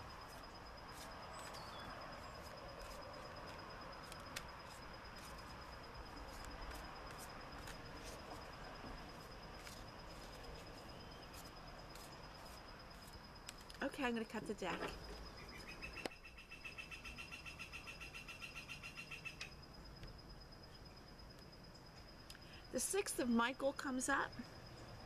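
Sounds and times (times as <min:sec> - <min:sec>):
high insect trill: 0:00.0 - 0:25.0
bird chirps: 0:01.3 - 0:02.3, 0:15.1 - 0:19.5.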